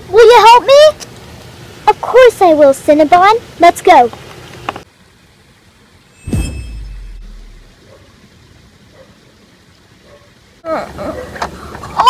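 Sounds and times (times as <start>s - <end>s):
high chime shimmer: 6.2s - 7.8s
whoosh falling in pitch: 6.2s - 7.8s.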